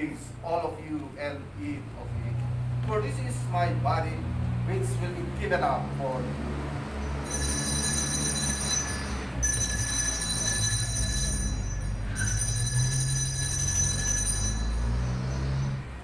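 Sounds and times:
altar bells ringing: 0:07.2 - 0:16.0.

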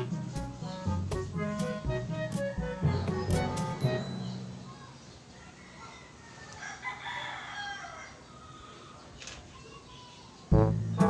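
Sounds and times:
rooster crowing: 0:05.4 - 0:08.8.

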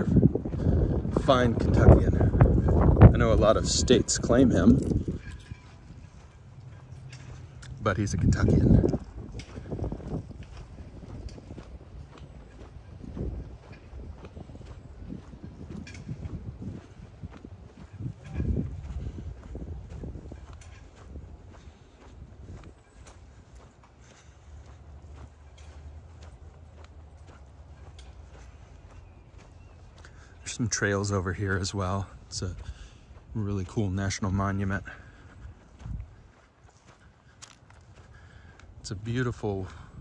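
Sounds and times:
low rumbles: 0:00.0 - 0:36.6
footsteps on paved path: 0:00.0 - 0:40.0.

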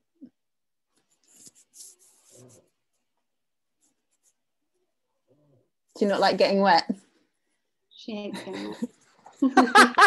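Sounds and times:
faint rustling and scratching: 0:00.9 - 0:07.6.

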